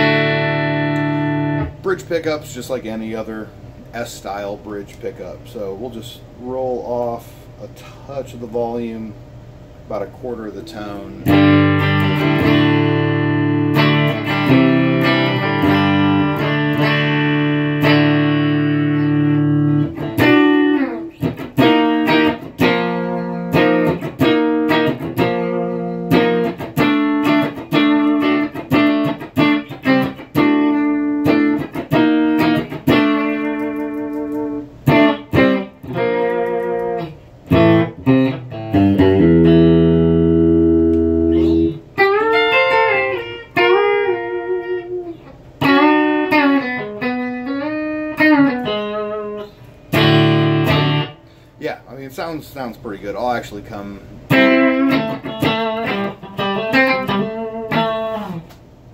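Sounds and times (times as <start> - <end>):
clean electric guitar: 0.0 - 4.0, 10.1 - 51.6, 54.1 - 58.9.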